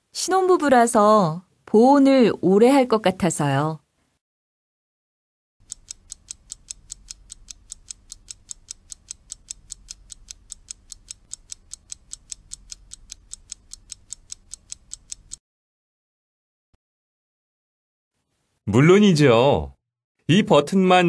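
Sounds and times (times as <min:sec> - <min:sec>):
clock ticking timer: 0:05.6 - 0:15.4.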